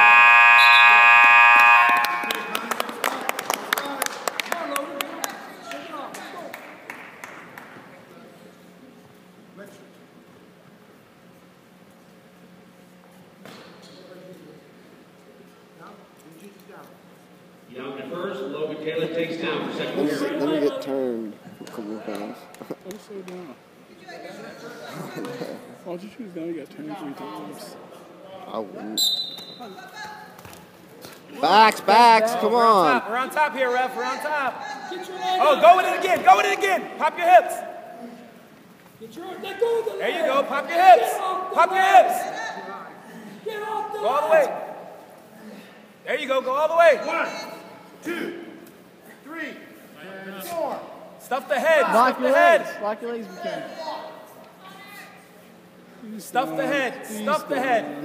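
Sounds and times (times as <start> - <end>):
scoreboard buzzer: 0.0 - 2.8
scattered handclaps: 1.6 - 7.8.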